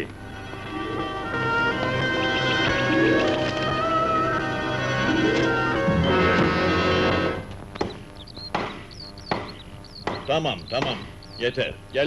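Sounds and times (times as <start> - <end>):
background music: 0.0 - 7.5.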